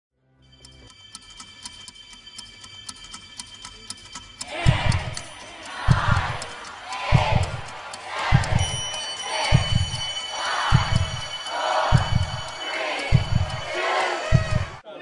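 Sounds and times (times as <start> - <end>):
crowd shouting: 4.4 - 14.8.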